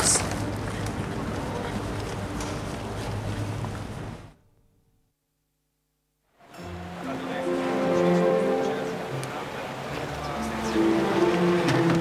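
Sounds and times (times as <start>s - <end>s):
noisy waterfront background: 0.0s - 4.4s, 6.4s - 12.0s.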